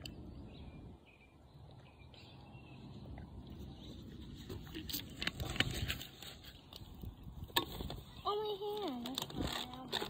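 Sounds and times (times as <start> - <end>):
knocks and scrapes: 3.9 - 8.1.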